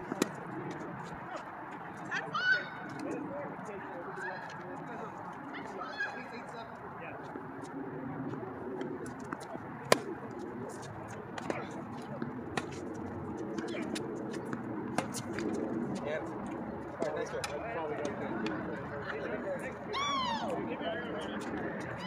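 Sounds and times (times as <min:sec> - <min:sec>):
tennis balls struck by rackets: 0:00.0 - 0:00.5, 0:08.8 - 0:16.0
murmur of voices: 0:15.7 - 0:22.0.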